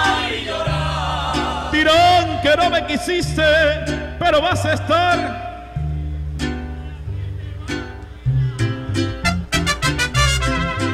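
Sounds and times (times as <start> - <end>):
held low bass notes: 0.0 - 10.9
strummed guitar chords: 0.0 - 10.9.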